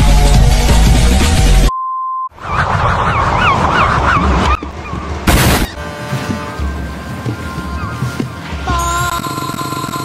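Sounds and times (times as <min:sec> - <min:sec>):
wobbling honking sound: 0:05.3 - 0:09.1.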